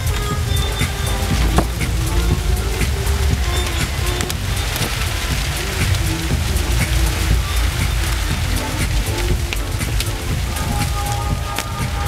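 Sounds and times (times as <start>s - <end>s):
faint background music: 0.0s - 12.0s
rustling crackling strips in wind: 0.0s - 12.0s
wind rumble on microphone: 0.0s - 12.0s.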